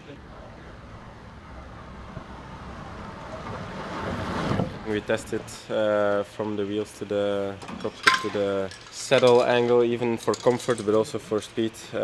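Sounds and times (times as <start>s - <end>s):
bike tyres rushing on wooden track: 2.1s - 5.0s.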